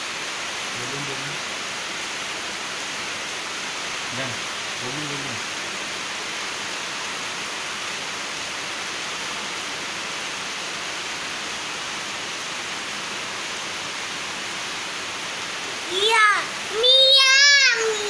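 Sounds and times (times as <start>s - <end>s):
steady rain falling: 0.0s - 18.0s.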